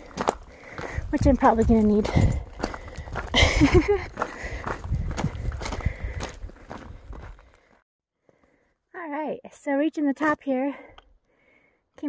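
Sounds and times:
footsteps on rocky dirt trail: 0.0s - 7.8s.

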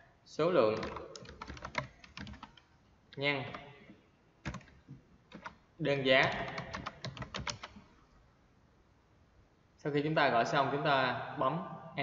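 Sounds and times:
computer keyboard typing: 0.7s - 2.7s, 4.4s - 5.6s, 6.2s - 7.8s.

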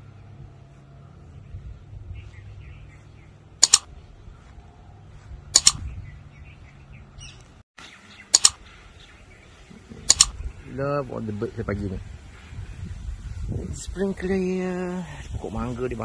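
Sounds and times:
songbird chirping: 0.1s - 11.6s.

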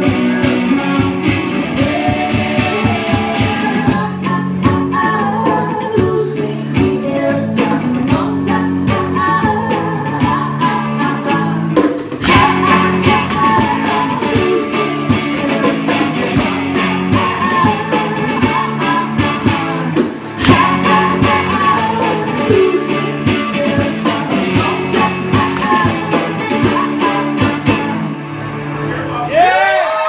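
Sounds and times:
percussion beat: 0.0s - 4.1s, 11.8s - 27.9s
woman singing: 0.0s - 28.2s
electric guitar: 0.0s - 30.0s.

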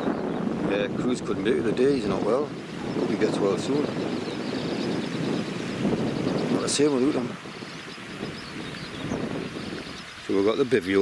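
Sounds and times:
wind buffeting microphone: 0.0s - 11.0s
river running over stones: 6.6s - 11.0s.

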